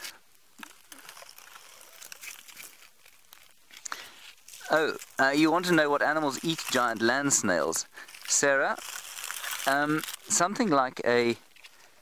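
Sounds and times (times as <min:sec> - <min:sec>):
faint rustling and crackling: 0:00.0 - 0:12.0.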